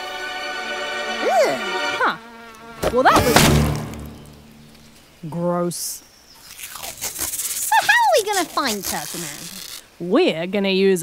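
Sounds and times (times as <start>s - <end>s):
insect buzzing: 0.0s - 5.2s, 6.1s - 10.0s
sharp cartoon hit: 3.0s - 4.6s
loud splat: 3.1s - 4.1s.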